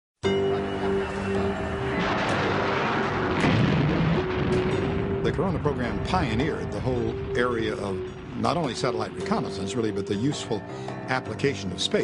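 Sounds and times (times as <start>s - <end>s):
rocket launch roar: 1.0s - 8.9s.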